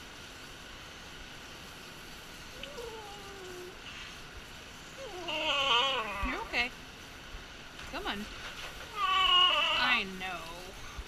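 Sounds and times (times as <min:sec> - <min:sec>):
small dog whining: 0:02.5 - 0:03.9, 0:05.0 - 0:06.5, 0:08.9 - 0:10.0.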